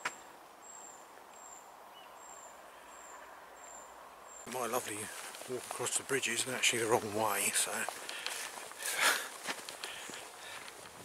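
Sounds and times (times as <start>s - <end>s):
footsteps on dry grass: 4.5s - 11.0s.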